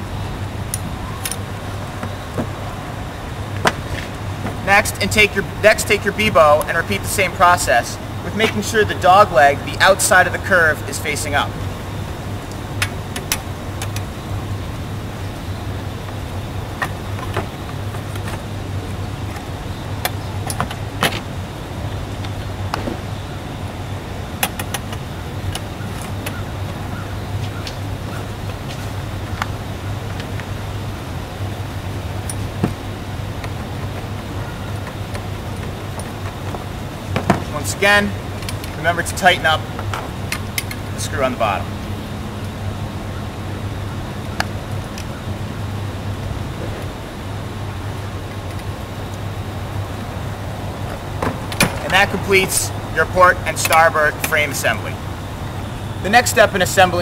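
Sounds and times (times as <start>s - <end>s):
low steady hum: 0.0s - 57.0s.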